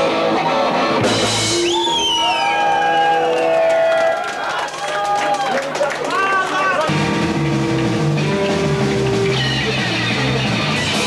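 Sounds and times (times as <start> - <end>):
audience shouting and cheering: 0.0 - 11.0.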